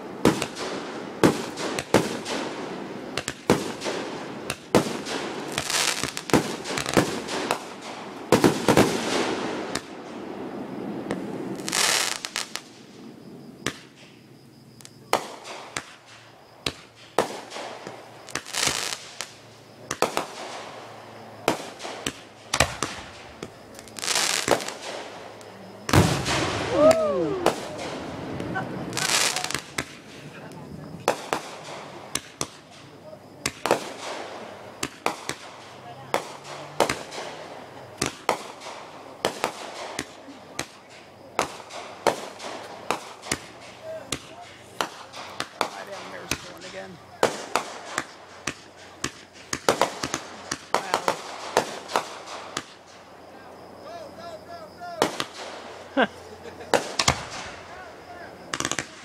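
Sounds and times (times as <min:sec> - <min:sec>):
fireworks popping and crackling: 0:00.0 - 0:53.3, 0:53.9 - 0:59.0
fireworks hissing bursts: 0:00.0 - 0:59.0
loud firework bang: 0:25.9 - 0:30.0.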